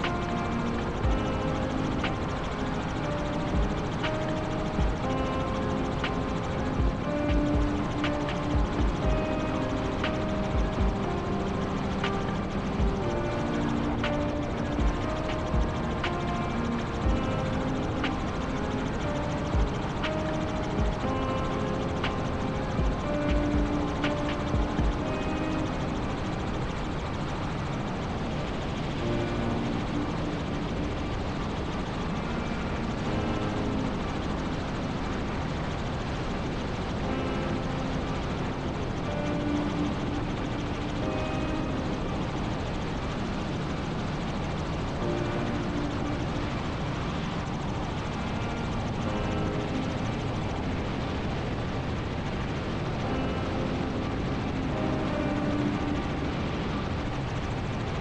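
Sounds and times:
helicopter rotor and engine noise: 0:00.0 - 0:58.0.

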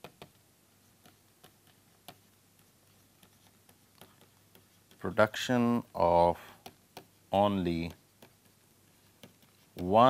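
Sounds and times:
stylus tapping on tablet: 0:00.0 - 0:05.0, 0:06.5 - 0:10.0.

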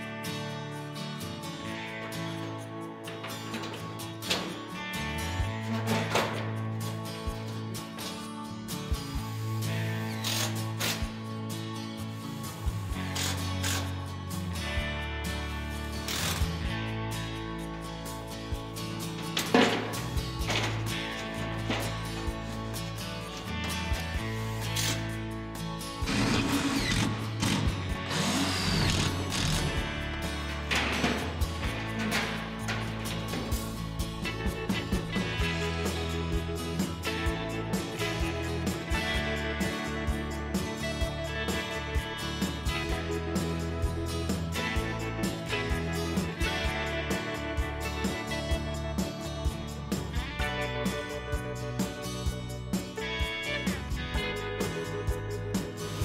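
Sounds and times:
background music with bass: 0:00.0 - 0:56.0
power tool noise: 0:16.1 - 0:16.6, 0:26.0 - 0:30.0.

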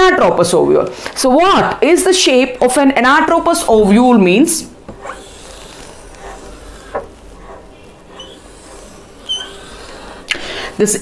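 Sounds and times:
marker rubbing on whiteboard: 0:04.9 - 0:11.0
marker squeaks: 0:04.9 - 0:11.0.

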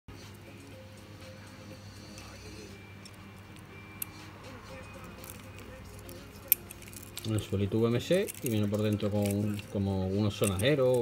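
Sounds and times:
faint background music: 0:00.1 - 0:11.0.

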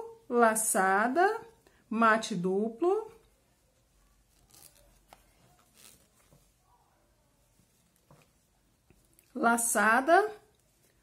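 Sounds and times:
faint rustling of yarn: 0:00.0 - 0:11.0.

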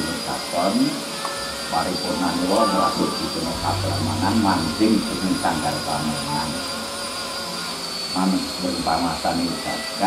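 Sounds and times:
thin high-pitched whine: 0:00.0 - 0:10.0
low steady hum: 0:01.6 - 0:09.1.

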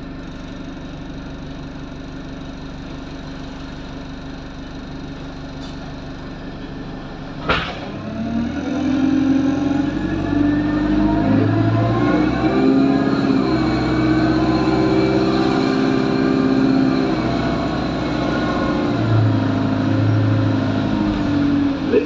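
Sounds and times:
bus diesel engine pulling: 0:00.0 - 0:22.0.

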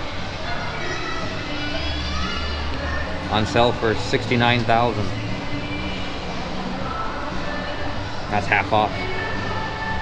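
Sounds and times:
shopping mall background din: 0:00.0 - 0:10.0.

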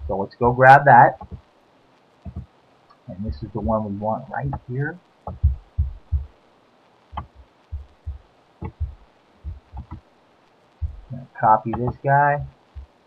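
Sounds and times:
computer mouse clicking and thumping: 0:01.2 - 0:01.4, 0:02.2 - 0:02.5, 0:05.3 - 0:06.3, 0:07.1 - 0:10.0, 0:10.8 - 0:12.9.

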